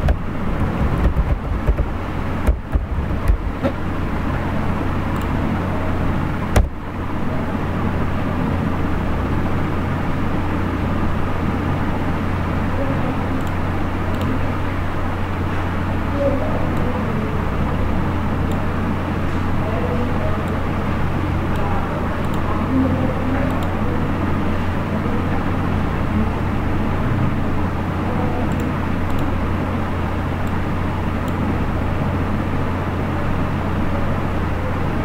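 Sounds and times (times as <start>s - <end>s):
constant low hum: 0.0s - 35.0s.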